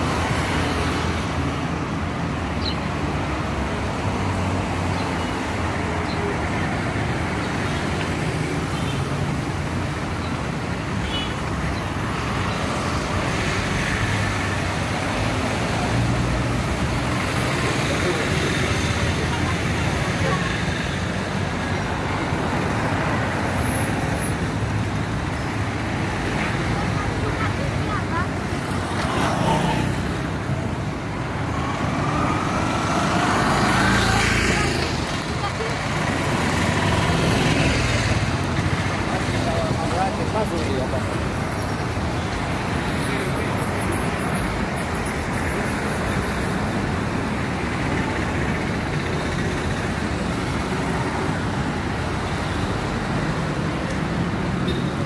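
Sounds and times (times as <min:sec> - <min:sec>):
street traffic: 0:00.0 - 0:55.0
people's voices: 0:14.6 - 0:24.5, 0:25.2 - 0:52.4.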